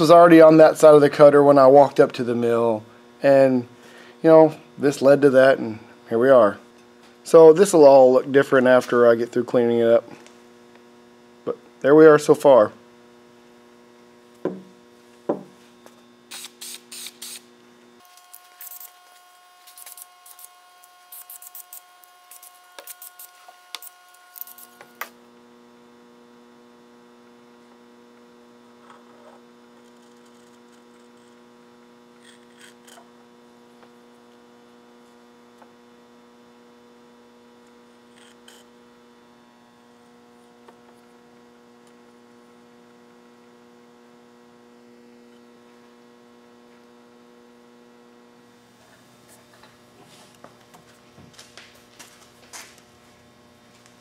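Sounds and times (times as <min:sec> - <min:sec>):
steady mains hum: 0:00.0 - 0:54.0.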